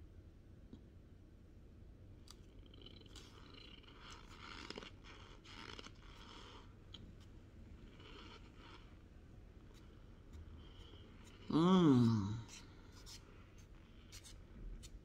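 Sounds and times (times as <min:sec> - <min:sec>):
crunchy chewing: 0:02.3 - 0:11.5.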